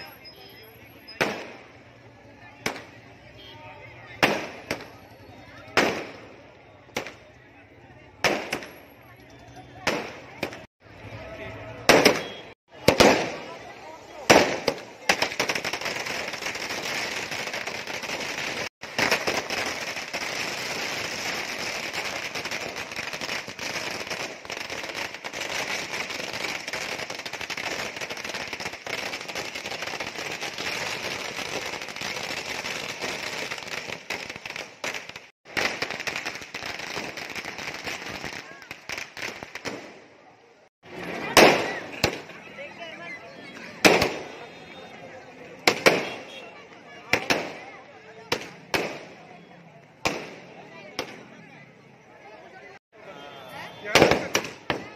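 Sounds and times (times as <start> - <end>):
firecrackers crackling rapidly: 0.0 - 51.9, 52.7 - 54.9
firework bangs: 1.1 - 3.2, 4.1 - 7.3, 8.2 - 9.0, 9.8 - 10.7, 11.7 - 40.2, 40.9 - 42.4, 43.6 - 44.6, 45.6 - 49.3, 50.0 - 51.3, 53.3 - 54.9.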